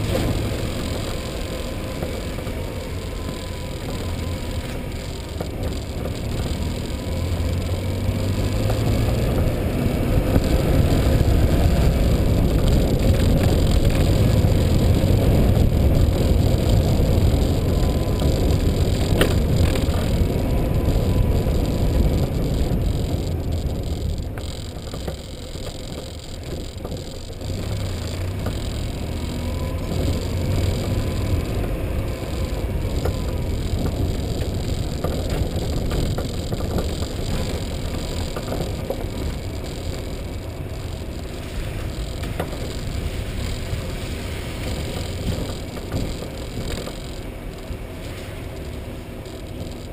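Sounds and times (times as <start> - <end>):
wheels rolling over rough asphalt: 0.0 - 49.9
wind rumble on microphone: 0.0 - 49.9.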